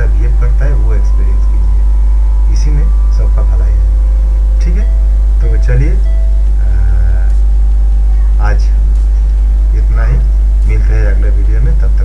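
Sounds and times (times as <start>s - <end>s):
faint higher tone: 0.0s - 11.9s
faint steady tones: 0.0s - 12.0s
low mains hum: 0.0s - 12.0s.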